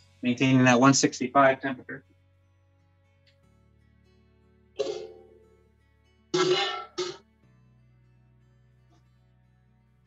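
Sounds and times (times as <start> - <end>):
quiet background music: 0.0 - 10.0
person coughing: 6.4 - 7.2.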